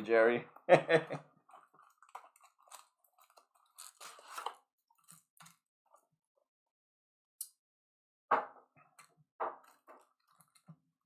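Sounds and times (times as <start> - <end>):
foil wrappers crinkling: 1.5 - 5.2.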